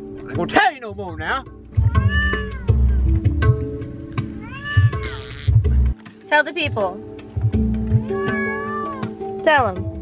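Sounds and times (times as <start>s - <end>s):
background music: 0.0s - 10.0s
cat meowing: 1.8s - 3.0s, 4.3s - 5.6s, 8.0s - 9.2s.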